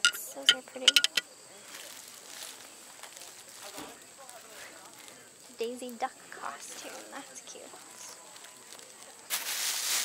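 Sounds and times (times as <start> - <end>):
ceramic trivet clacking: 0.0 - 1.2
faint distant voices: 0.0 - 10.0.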